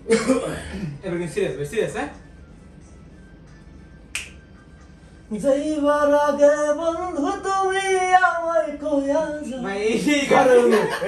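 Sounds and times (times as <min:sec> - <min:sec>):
faint low room hum: 0:00.0 - 0:11.0
finger snap: 0:04.1 - 0:04.6.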